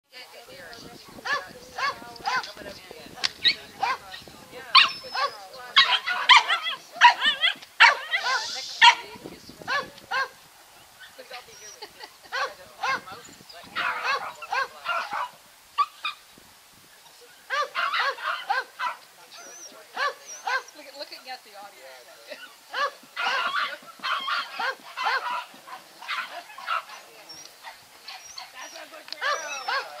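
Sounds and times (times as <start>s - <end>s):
dog barking: 4.7s - 9.1s, 9.7s - 10.4s, 12.3s - 13.1s, 13.8s - 16.2s, 17.5s - 19.0s, 20.0s - 20.8s, 22.7s - 27.0s, 29.2s - 30.0s.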